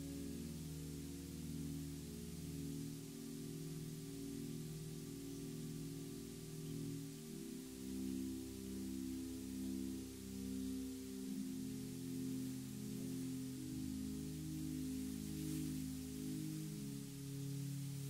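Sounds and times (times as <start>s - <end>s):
slow soft instrumental music: 0.0s - 18.0s.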